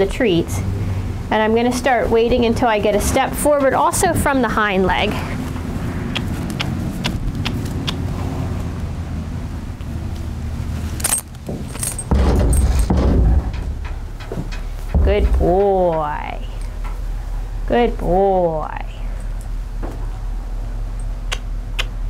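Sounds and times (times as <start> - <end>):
low steady rumble: 0.0 - 22.0
horse hooves clunking on trailer floor: 2.6 - 8.0, 10.9 - 17.4
halter hardware jingling: 10.9 - 17.0.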